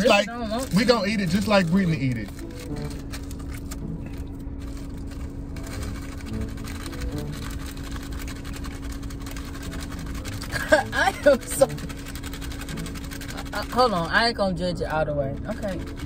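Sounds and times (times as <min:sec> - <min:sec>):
plastic packaging rustling: 0:00.0 - 0:13.5
car cabin hum: 0:00.0 - 0:16.0.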